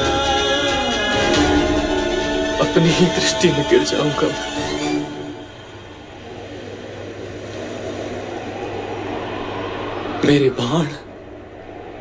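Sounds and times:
low steady drone: 0:00.0 - 0:12.0.

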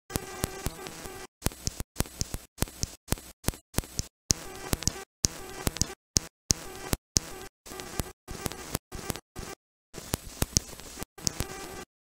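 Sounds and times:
clicks: 0:00.1 - 0:09.2, 0:10.0 - 0:11.8
buzzy glitched audio snippets: 0:00.1 - 0:11.9.

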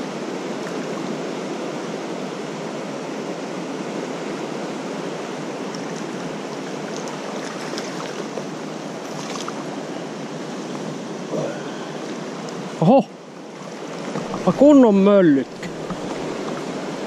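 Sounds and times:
river rapids rushing: 0:00.0 - 0:17.0.

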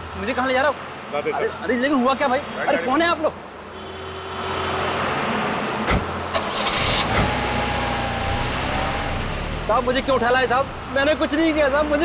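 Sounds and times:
car engine running: 0:05.9 - 0:11.1.

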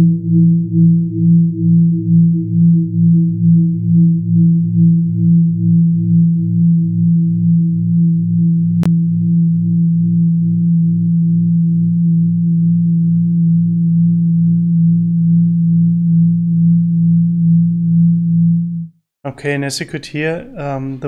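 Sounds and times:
low synth drone pulsing: 0:00.0 - 0:19.0.

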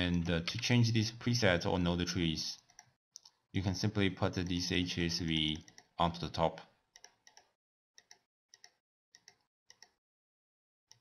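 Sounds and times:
faint computer mouse clicks: 0:07.0 - 0:10.0.

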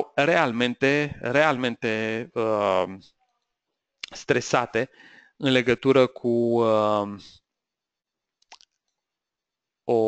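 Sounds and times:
man speaking: 0:00.0 - 0:03.0, 0:04.0 - 0:07.4.

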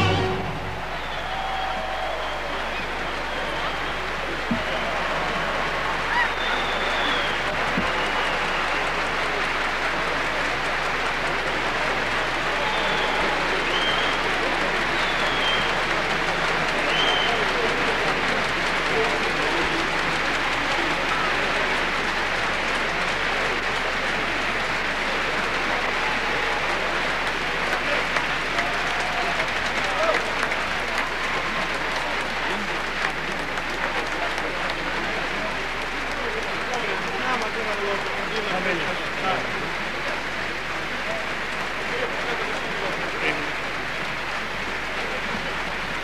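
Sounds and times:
audience applauding: 0:00.0 - 0:46.0
crowd voices: 0:00.0 - 0:46.0.

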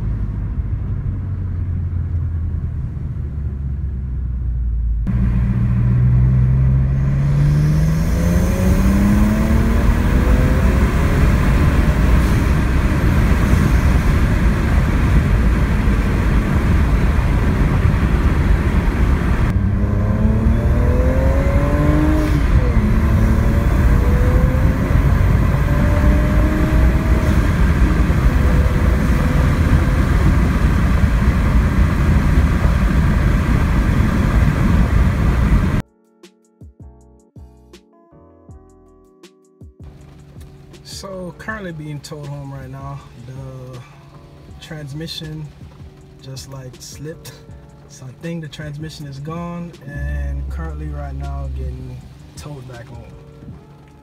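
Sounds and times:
car engine accelerating: 0:00.0 - 0:35.8, 0:39.9 - 0:54.0
wind rush: 0:05.1 - 0:35.8.

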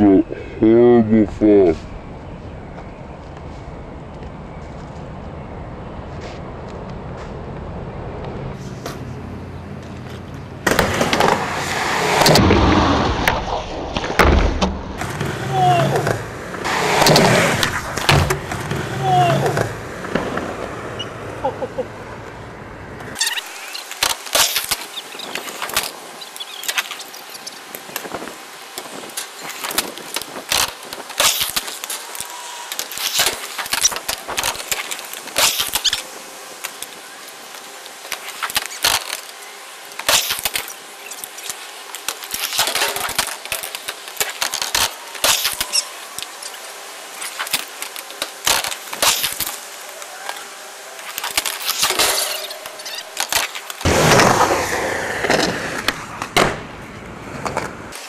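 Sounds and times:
low street rumble: 0:00.0 - 0:31.1, 0:42.7 - 0:58.0
skateboard wheels rolling: 0:06.0 - 0:58.0
skateboards clacking: 0:09.8 - 0:58.0.

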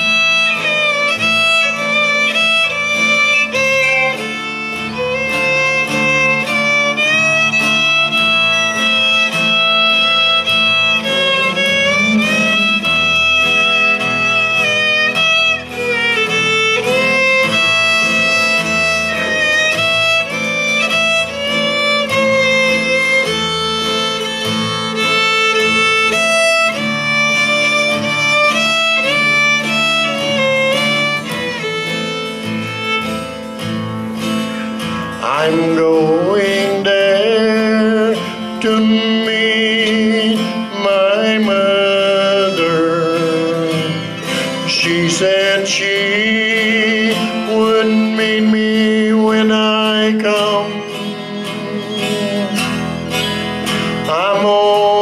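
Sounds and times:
acoustic guitar accompaniment: 0:00.0 - 0:55.0
fiddle melody: 0:00.0 - 0:55.0.

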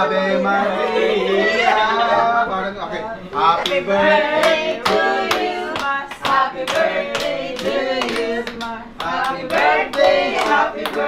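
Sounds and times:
voices singing birthday chant: 0:00.0 - 0:11.0
group clapping in time: 0:03.6 - 0:11.0.

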